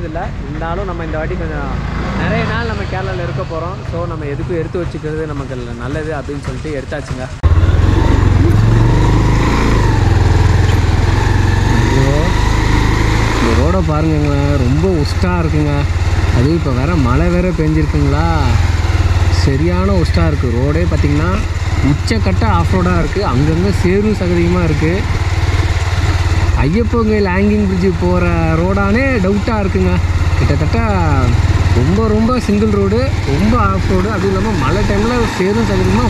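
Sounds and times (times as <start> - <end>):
motorcycle engine running: 0.1 - 36.0
person speaking: 26.5 - 36.0.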